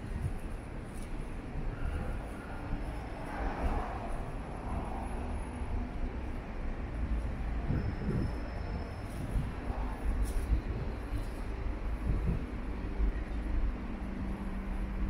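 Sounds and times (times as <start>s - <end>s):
traffic rumble of engines and tyres: 0.0s - 15.0s.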